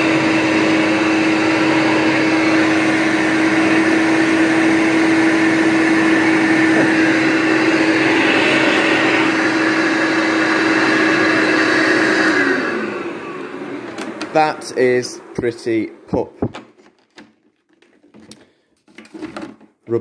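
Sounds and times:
vacuum motor winding down: 0:00.0 - 0:15.9
vacuum cleaner running: 0:00.0 - 0:16.6.

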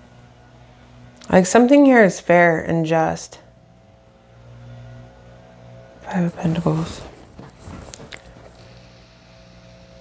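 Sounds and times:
faint steady engine hum: 0:00.0 - 0:10.0.

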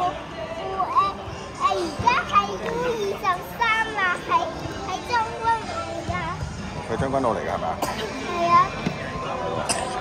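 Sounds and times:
boy talking: 0:00.6 - 0:06.4, 0:08.0 - 0:09.0.

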